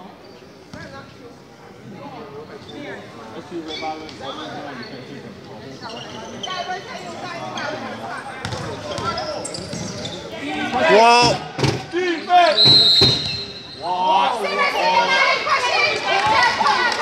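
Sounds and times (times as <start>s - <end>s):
basketball bouncing on court: 8.4s - 10.0s
referee whistle: 12.4s - 14.0s.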